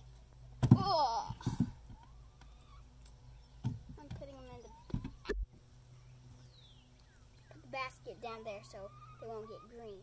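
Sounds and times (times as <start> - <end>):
bird calling: 1.9 - 10.0.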